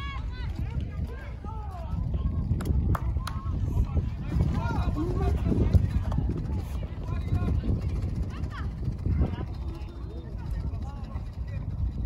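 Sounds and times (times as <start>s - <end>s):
players shouting and calling: 0.0s - 2.5s
steady low rumble: 0.0s - 12.0s.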